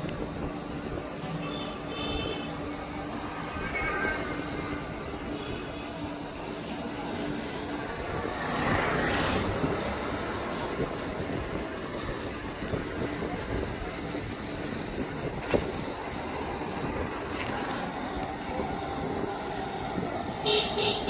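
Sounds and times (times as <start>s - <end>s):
wind rumble on microphone: 0.0s - 5.7s, 7.7s - 21.0s
road traffic: 0.0s - 21.0s.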